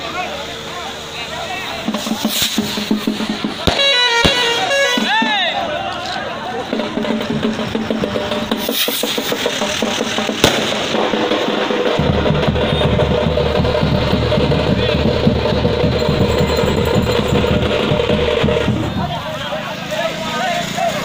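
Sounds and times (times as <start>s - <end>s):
procession drums beating fast: 1.8s - 5.7s, 6.5s - 19.7s
sharp bang: 8.4s - 19.0s.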